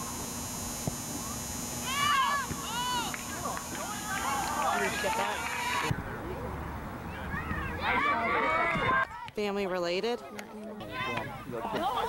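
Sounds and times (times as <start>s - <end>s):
steady low hum: 0.0s - 7.9s.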